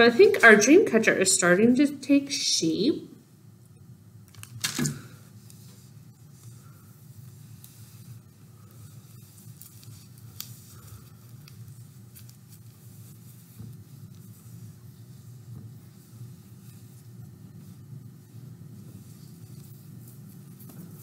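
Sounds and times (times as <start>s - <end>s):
steady low hum: 0.0s - 21.0s
thread rustling through web: 4.3s - 21.0s.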